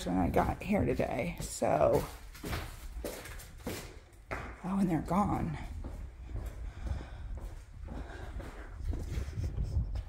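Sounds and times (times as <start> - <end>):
footsteps on concrete: 0.0 - 10.0
wind rumbling on microphone: 5.4 - 10.0.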